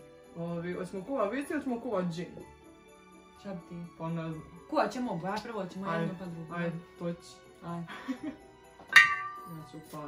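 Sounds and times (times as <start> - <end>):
christmas music with jingle bells: 0.0 - 10.0
glass clink ringing: 8.9 - 9.7.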